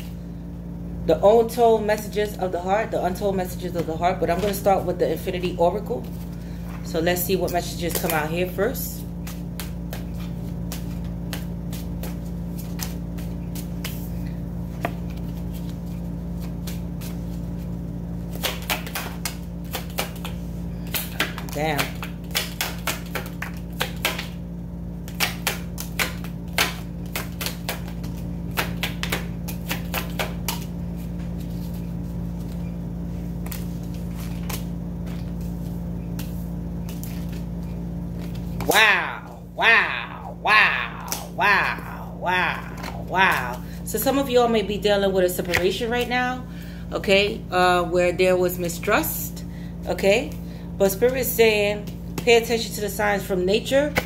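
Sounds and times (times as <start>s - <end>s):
low hum: 0.0s - 54.0s
cards being shuffled: 3.8s - 24.4s, 25.0s - 44.3s.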